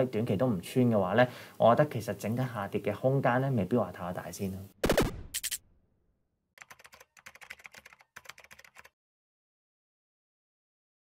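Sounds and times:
keyboard typing clicks: 6.6s - 8.9s.

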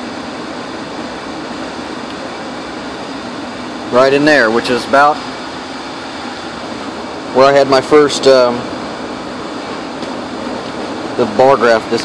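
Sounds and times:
air handling hum and hiss: 0.0s - 12.0s.

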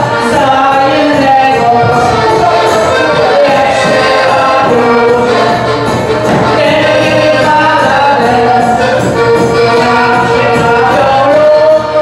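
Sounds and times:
accordion: 0.0s - 12.0s
folk band playing dance music: 0.0s - 12.0s.

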